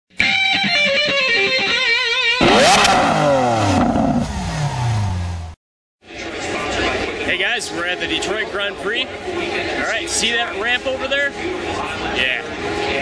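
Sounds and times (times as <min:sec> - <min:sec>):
wavering electric guitar riff: 0:00.1 - 0:04.4
vehicle engine revving past: 0:02.4 - 0:05.6.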